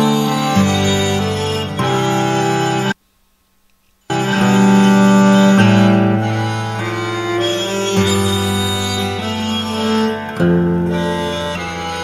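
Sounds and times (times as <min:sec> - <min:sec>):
sustained acoustic guitar notes: 0:00.0 - 0:03.0, 0:04.1 - 0:12.0.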